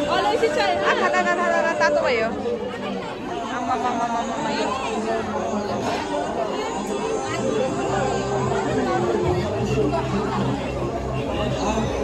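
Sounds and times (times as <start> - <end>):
chatter of many voices: 0.0 - 12.0
music playing: 0.0 - 12.0.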